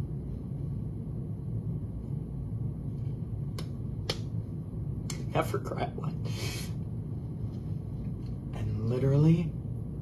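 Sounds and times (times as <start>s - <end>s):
steady low hum: 0.0s - 10.0s
finger snaps: 3.5s - 4.4s, 5.0s - 5.3s.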